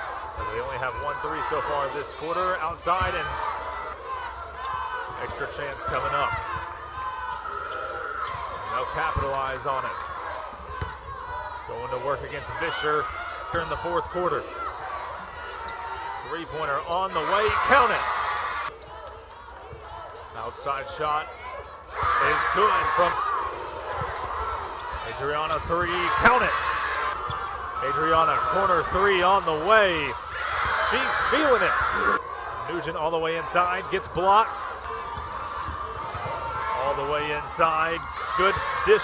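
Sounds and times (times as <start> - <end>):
arena background noise: 0.0 - 39.0.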